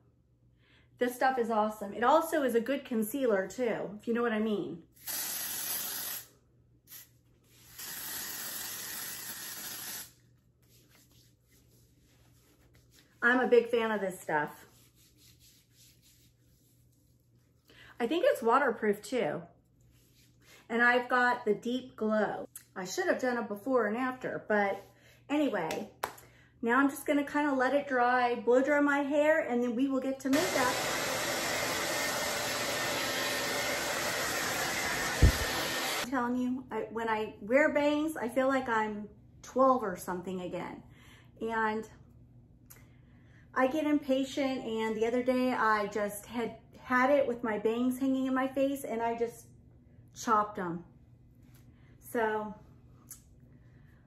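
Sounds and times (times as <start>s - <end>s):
aerosol spray hissing: 5.0s - 6.3s, 30.4s - 36.1s
hair dryer blowing: 30.3s - 36.1s.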